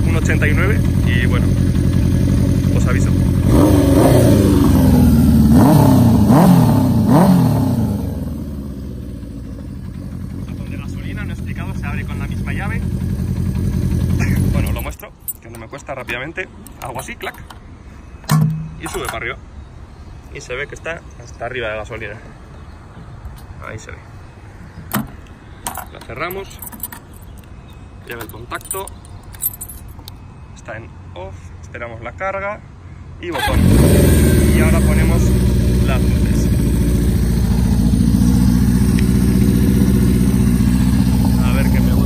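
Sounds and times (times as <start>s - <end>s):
motorcycle engine revving and idling: 0.0s - 15.0s, 33.4s - 42.0s
metal filler cap snapping shut: 18.3s - 19.2s
key clattering in lock: 24.9s - 27.5s, 28.1s - 30.1s.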